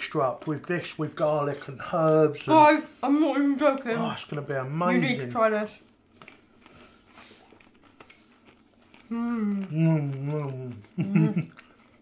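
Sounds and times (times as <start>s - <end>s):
faint cracker chewing: 5.7s - 12.0s.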